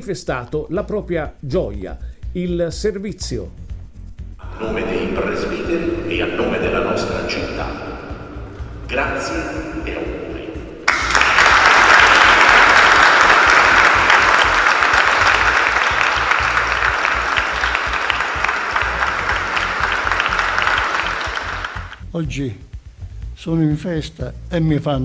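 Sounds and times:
congregation applauding: 10.3s - 22.0s.

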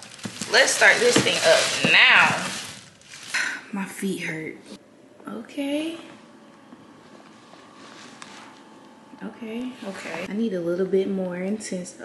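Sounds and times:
massager motor hum: 5.2s - 11.3s.

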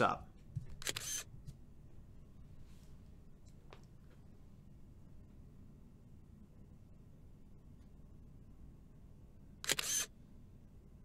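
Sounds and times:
phone camera shutter click: 0.8s - 1.3s, 9.6s - 10.1s.

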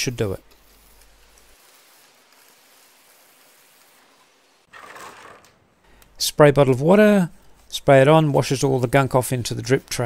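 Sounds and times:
brush scrubbing bicycle chainring: 0.1s - 5.0s, 6.9s - 10.0s.

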